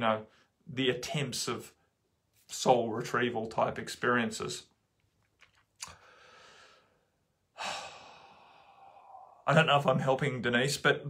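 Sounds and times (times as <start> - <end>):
man sighing: 7.5 - 9.4.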